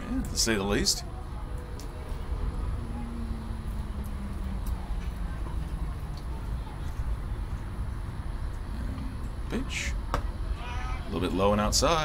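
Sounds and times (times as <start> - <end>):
steady low rumble: 0.0 - 10.6
faint steady tone: 0.0 - 11.7
faint distant voices: 0.0 - 12.0.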